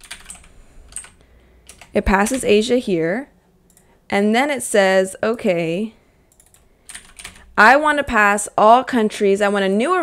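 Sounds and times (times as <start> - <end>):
computer keyboard typing: 0.0 - 2.7, 3.7 - 3.9, 6.3 - 7.5.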